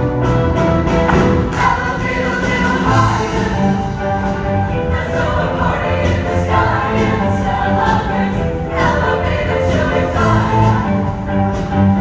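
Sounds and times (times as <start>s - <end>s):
choir singing: 1.2s - 11.2s.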